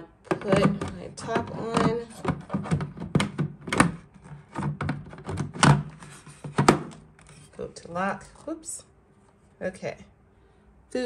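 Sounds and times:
lid clicking and knocking: 0.0 - 7.0.

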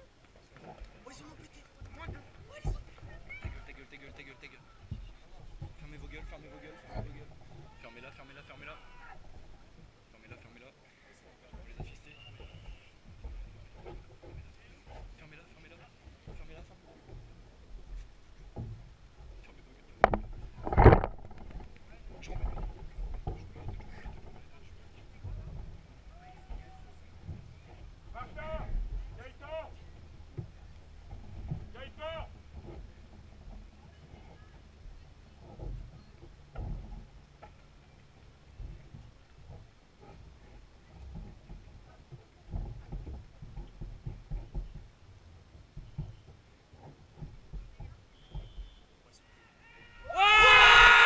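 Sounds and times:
faint knocks: 11.5 - 48.9
distant shouting voices: 49.3 - 51.0.

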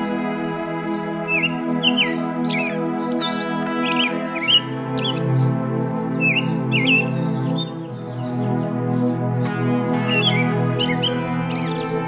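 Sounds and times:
birds chirping: 0.0 - 12.0
calm background music: 0.0 - 12.0.

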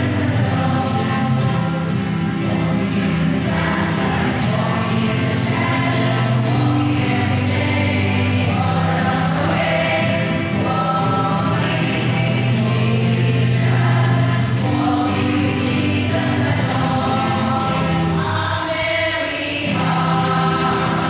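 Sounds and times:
string ensemble of ukuleles and guitars: 0.0 - 21.0.

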